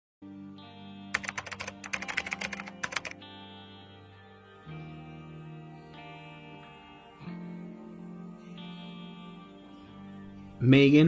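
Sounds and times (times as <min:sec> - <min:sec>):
music holding a chord: 0:00.3 - 0:11.0
rapid keyboard typing: 0:01.2 - 0:03.2.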